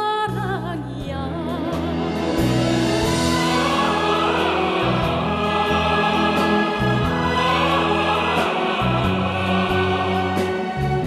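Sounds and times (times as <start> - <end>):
orchestra playing: 1.6 - 11.0
choir singing: 2.2 - 11.0.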